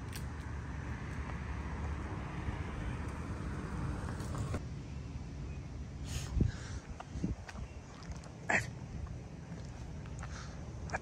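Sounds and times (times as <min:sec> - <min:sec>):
car driving by: 0:01.0 - 0:04.6.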